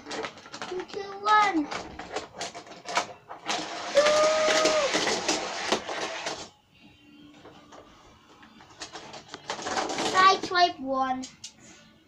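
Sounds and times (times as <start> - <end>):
toy cars rattling down plastic track: 0.0 - 6.5, 8.8 - 10.6.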